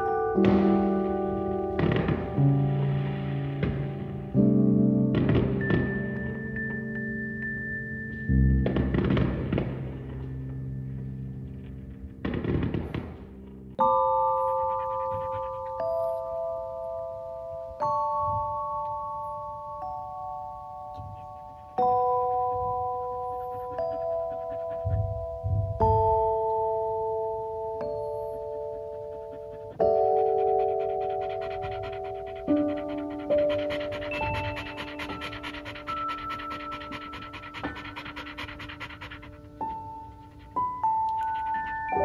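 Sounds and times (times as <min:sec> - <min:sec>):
soft mallet chime music: 0:00.0 - 0:08.8, 0:13.8 - 0:32.4
dog panting rapidly: 0:14.3 - 0:16.4, 0:20.9 - 0:26.2, 0:27.8 - 0:42.0.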